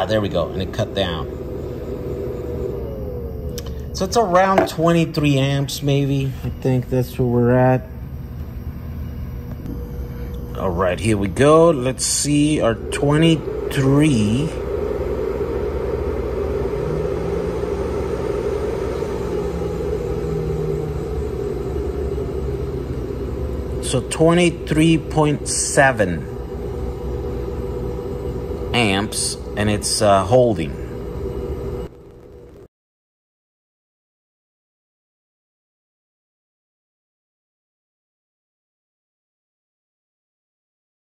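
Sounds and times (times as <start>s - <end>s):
cooling fan winding down: 0.0s - 32.7s
faint steady tone: 0.0s - 32.7s
machine whir and low hum: 0.0s - 32.7s.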